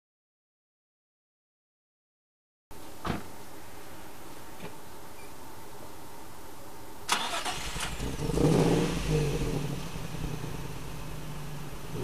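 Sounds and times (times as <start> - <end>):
car engine rumbling: 7.1 - 12.0.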